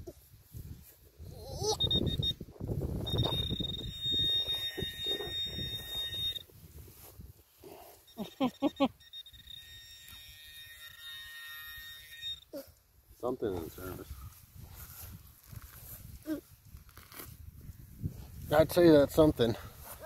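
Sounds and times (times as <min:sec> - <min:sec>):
soil and grass rustling: 0:00.0 - 0:20.0
steady high electronic tone: 0:01.7 - 0:07.1, 0:07.9 - 0:12.5.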